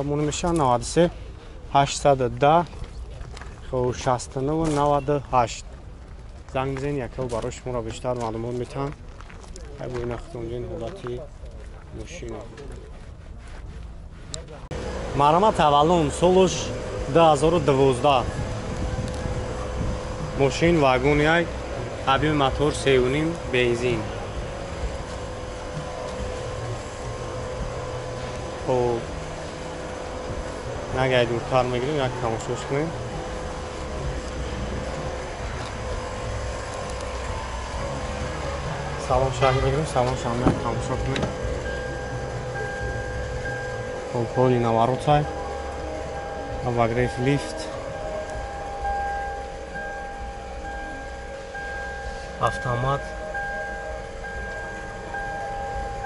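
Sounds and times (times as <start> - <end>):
low uneven rumble: 0.0 - 56.0
low hum: 11.5 - 56.0
pulsing electronic chime tones: 19.2 - 56.0.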